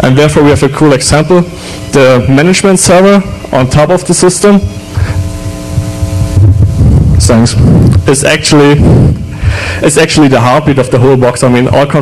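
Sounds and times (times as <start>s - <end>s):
low rumble on sound system: 0.0s - 12.0s
multi-tone hum: 0.0s - 12.0s.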